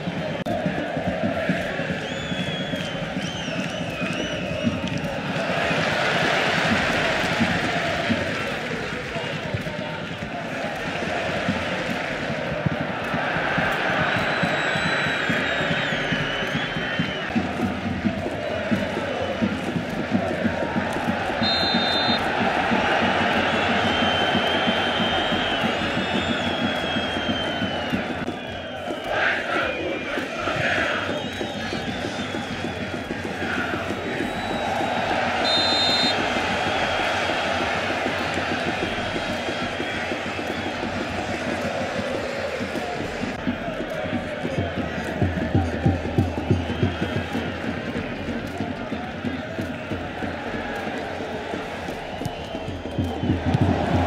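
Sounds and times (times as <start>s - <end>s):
stadium crowd chanting: 0.0s - 54.0s
high whistle blasts: 14.1s - 17.3s, 21.4s - 22.3s, 34.2s - 37.4s.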